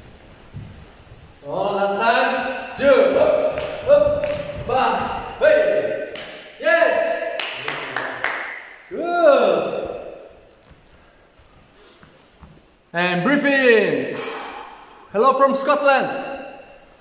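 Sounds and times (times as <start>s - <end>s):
man shouting: 1.6s - 8.0s, 8.9s - 10.3s.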